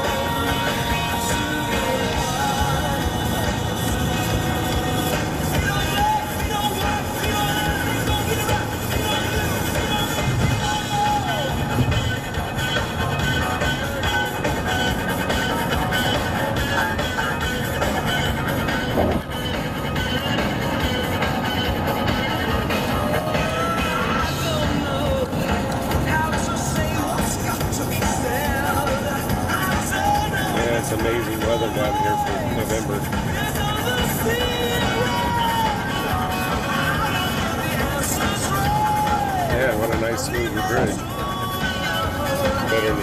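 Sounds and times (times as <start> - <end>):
car road noise rumble: 0.0 - 43.0
music playing: 0.0 - 43.0.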